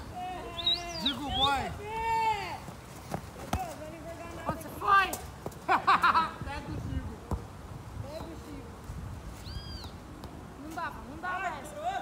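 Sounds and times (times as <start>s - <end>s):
boys shouting: 0.1s - 2.7s
football being kicked: 3.1s - 3.8s, 7.2s - 7.5s.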